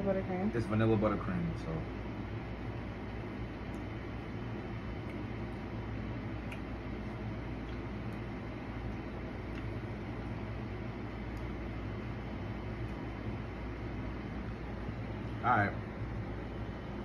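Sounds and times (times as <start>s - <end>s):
fan hum with hiss: 0.0s - 17.0s.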